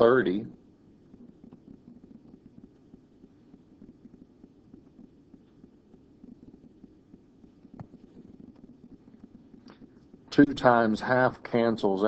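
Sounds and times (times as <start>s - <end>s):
low background rumble: 0.0s - 12.0s
stylus tapping on tablet: 7.7s - 8.7s.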